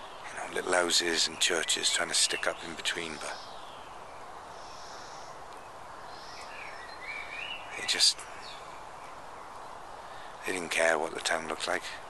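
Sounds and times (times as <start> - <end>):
faint bird calls: 0.0 - 12.0.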